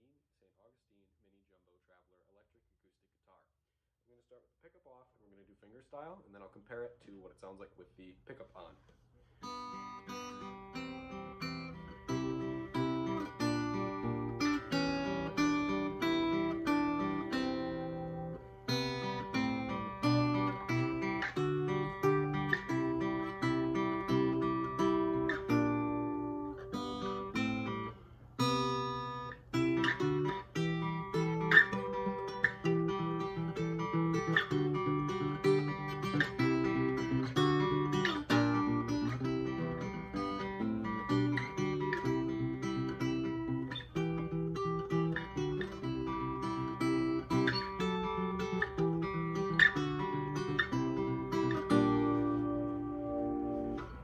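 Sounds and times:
fingerstyle acoustic guitar: 0:09.4 - 0:54.0.

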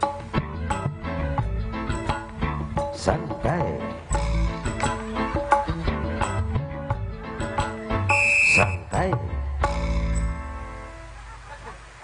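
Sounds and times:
live band music: 0:04.0 - 0:10.4
piercing high held note: 0:08.1 - 0:08.9.

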